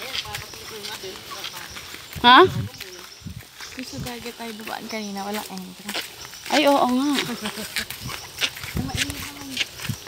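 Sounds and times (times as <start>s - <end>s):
footsteps on dirt path: 0.0s - 10.0s.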